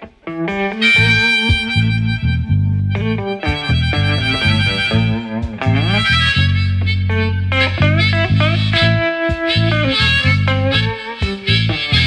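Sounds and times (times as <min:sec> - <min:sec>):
guitar accompaniment: 0:00.0 - 0:12.0
harmonica solo: 0:00.3 - 0:12.0.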